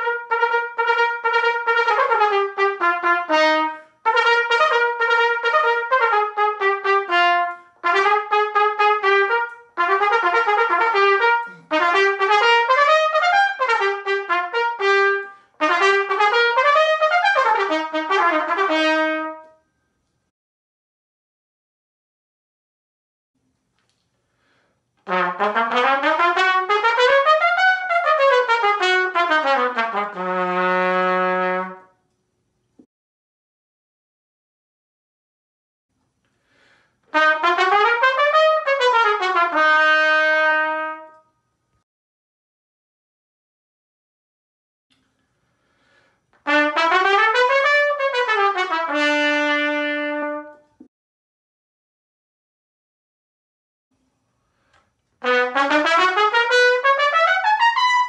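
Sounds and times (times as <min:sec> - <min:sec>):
solo trumpet playing: 0:00.0 - 0:19.7, 0:25.0 - 0:32.0, 0:37.1 - 0:41.4, 0:46.4 - 0:50.9, 0:55.2 - 0:58.0.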